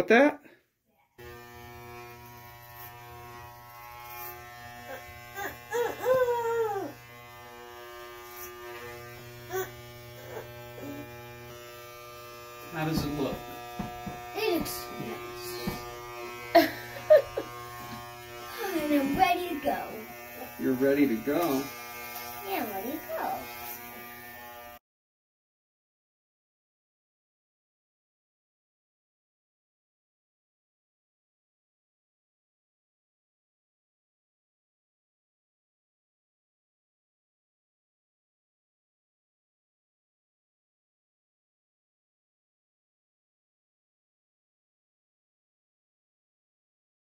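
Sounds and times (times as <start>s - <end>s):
electric hair clippers buzzing: 1.2s - 24.8s.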